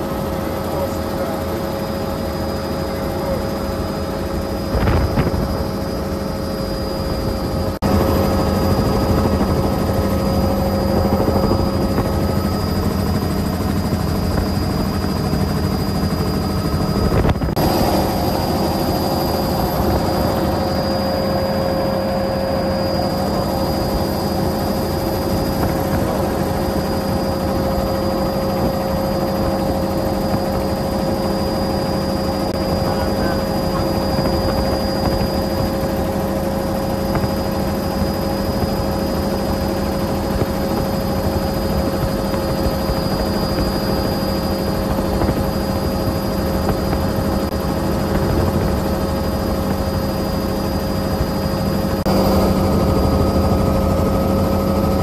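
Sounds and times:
helicopter rotor and engine: 0:00.0 - 0:55.0
high whine: 0:00.0 - 0:55.0.

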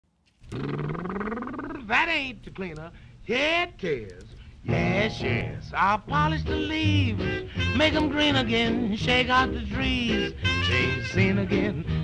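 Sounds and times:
person singing: 0:04.7 - 0:12.0.

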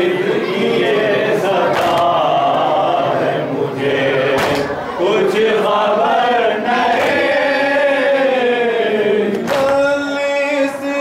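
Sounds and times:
men chanting a lament: 0:00.0 - 0:11.0
hands slapping chests: 0:01.7 - 0:02.1, 0:04.4 - 0:04.8, 0:06.9 - 0:07.2, 0:09.3 - 0:09.8.

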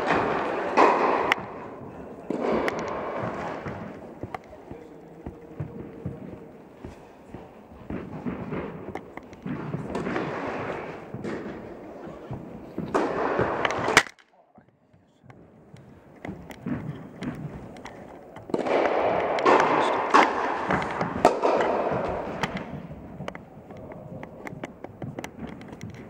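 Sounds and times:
tennis balls struck and bouncing: 0:00.0 - 0:14.2, 0:15.2 - 0:26.0
murmuring voices: 0:00.0 - 0:26.0.

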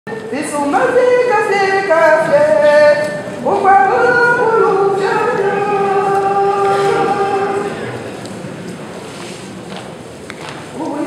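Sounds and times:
women's choir singing a cappella: 0:00.2 - 0:08.0.

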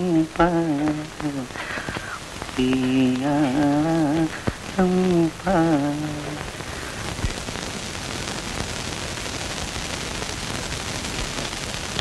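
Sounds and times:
man humming: 0:00.0 - 0:06.8
film soundtrack hiss and crackle: 0:00.0 - 0:12.0.

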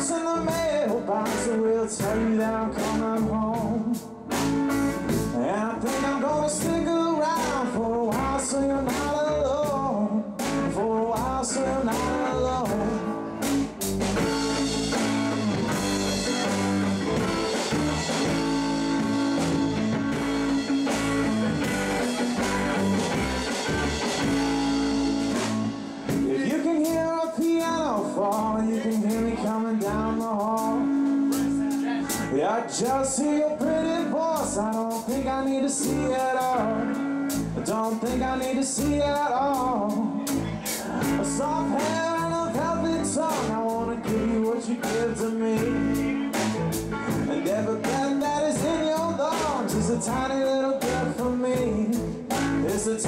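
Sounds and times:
bass guitar: 0:00.0 - 0:53.0
drum kit: 0:00.0 - 0:53.0
electric guitar lead: 0:00.0 - 0:53.0.

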